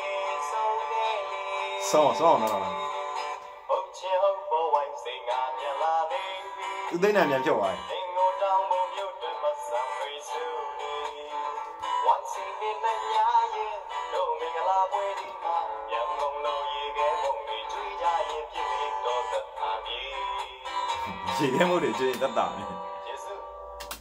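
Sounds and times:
person singing over music: 0:00.0 - 0:23.7.

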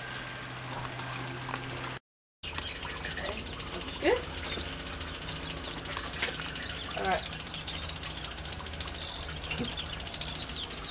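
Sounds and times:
electric pump humming: 0:00.0 - 0:10.9.

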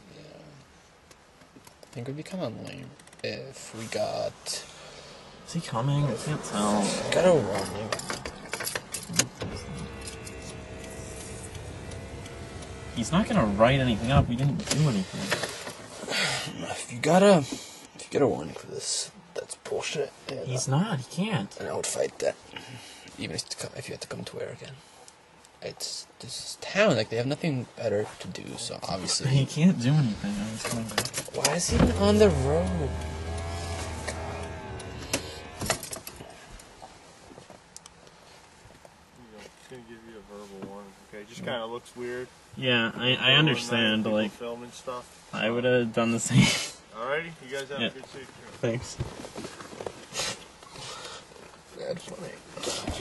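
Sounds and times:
power window motor whine: 0:09.0 - 0:14.5, 0:31.7 - 0:36.3.

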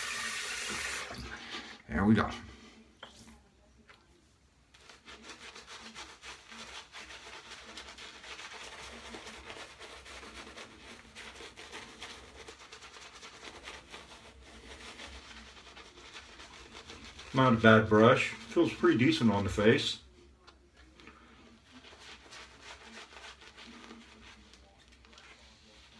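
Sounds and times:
shaving brush scrubbing lather: 0:04.7 - 0:20.0, 0:21.6 - 0:25.9.

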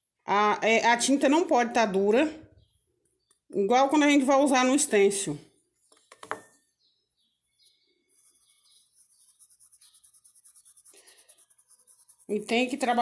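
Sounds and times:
faint bird chirps: 0:05.8 - 0:12.3
paintbrush scratching on cloth: 0:07.6 - 0:13.0.

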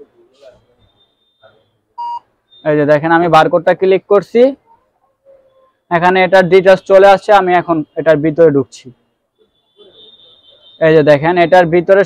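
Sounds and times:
short electronic beep: 0:00.4 - 0:02.8.

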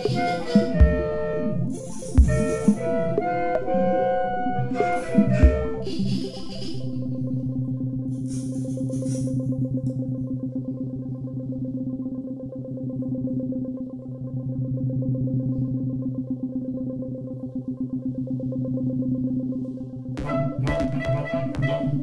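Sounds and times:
pulsing low clarinet drone: 0:00.0 - 0:09.8, 0:14.0 - 0:22.0.

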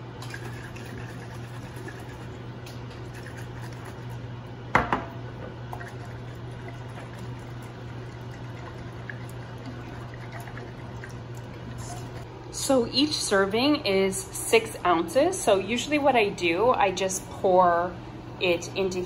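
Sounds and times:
liquid sloshing in a glass jar: 0:00.2 - 0:04.2, 0:05.7 - 0:12.2.

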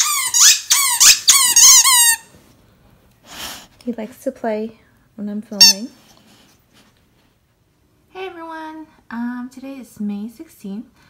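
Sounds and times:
squeaky dog toy squeaks: 0:00.0 - 0:02.3, 0:05.6 - 0:05.9.

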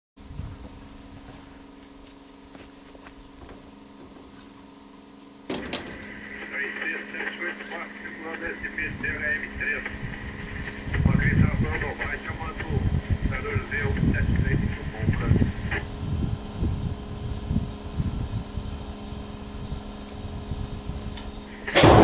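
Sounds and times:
locomotive idling hum: 0:00.2 - 0:22.0
low rumbles: 0:05.4 - 0:22.0
indistinct voices: 0:05.9 - 0:15.9.

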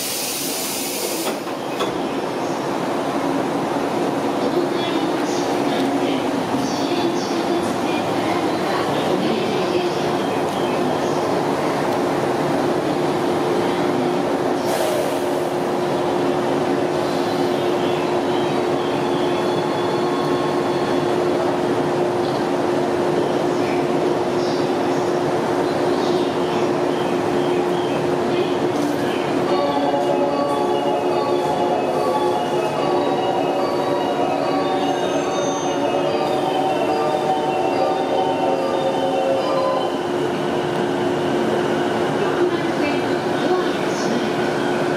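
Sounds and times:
train equipment humming: 0:00.0 - 0:44.9.

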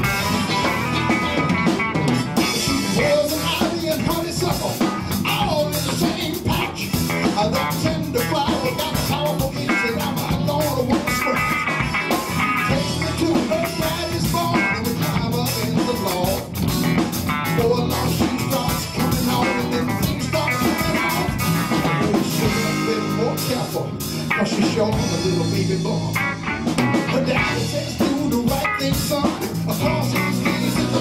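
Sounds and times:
drum kit: 0:00.0 - 0:31.0
electric guitar: 0:00.0 - 0:31.0.

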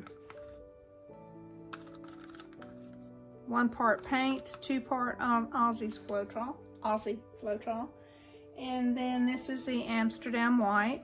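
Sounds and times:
soft background music chords: 0:00.0 - 0:11.0.

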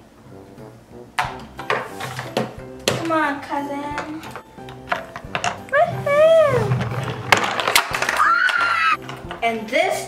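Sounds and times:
background music: 0:00.0 - 0:10.0
plastic toys knocking: 0:01.2 - 0:03.2, 0:03.9 - 0:09.6.

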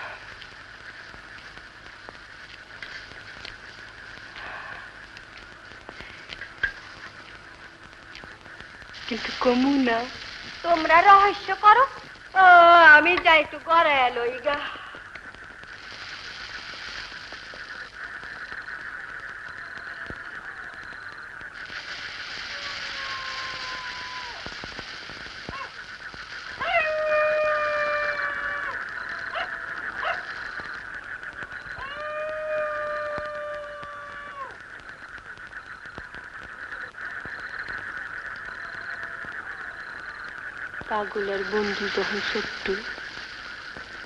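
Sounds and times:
insects chirring: 0:00.0 - 0:44.0
canine howling: 0:22.4 - 0:24.6, 0:26.5 - 0:30.4, 0:31.7 - 0:34.6.

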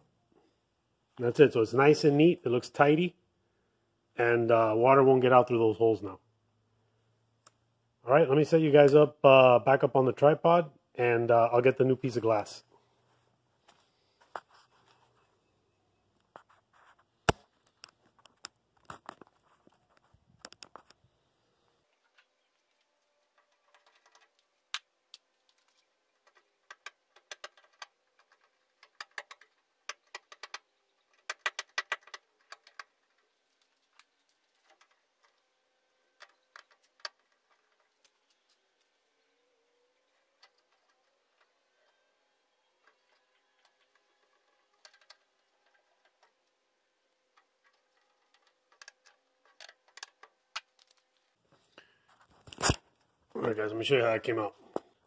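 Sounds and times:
tools and parts clicking: 0:22.1 - 0:39.0, 0:42.7 - 0:51.3.

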